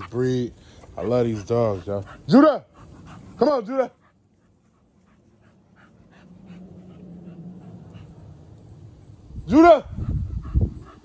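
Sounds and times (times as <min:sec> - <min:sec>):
dog panting: 0:00.0 - 0:08.9, 0:10.0 - 0:11.0.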